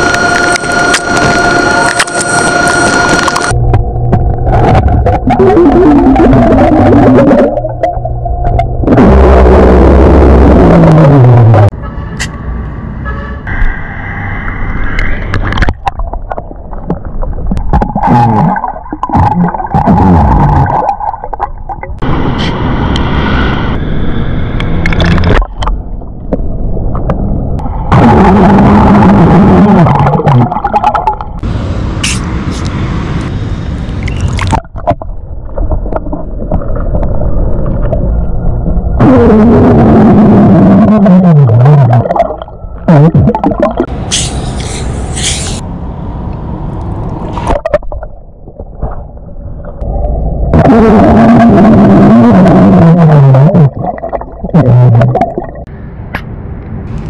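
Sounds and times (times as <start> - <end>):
water gurgling and bubbling: 0.0 - 11.7, 15.3 - 22.0, 24.7 - 27.1, 27.7 - 31.4, 34.0 - 43.9, 47.4 - 55.7
underwater belching: 4.7 - 11.7, 15.5 - 22.0, 27.9 - 31.4, 38.7 - 43.9, 49.8 - 55.7.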